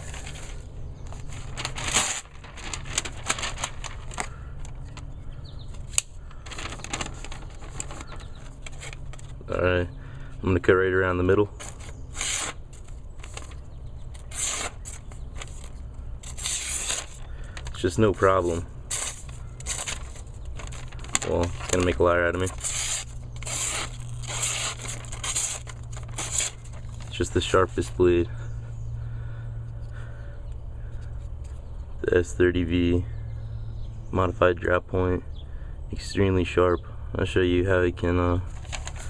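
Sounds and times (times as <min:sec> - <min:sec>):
paper rustling: 0:00.0 - 0:09.6, 0:11.2 - 0:28.1, 0:38.4 - 0:39.0
steady low hum: 0:00.0 - 0:39.0.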